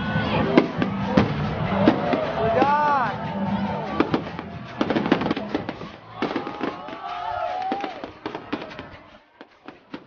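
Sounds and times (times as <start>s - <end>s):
fireworks bangs and crackles: 0.0s - 10.0s.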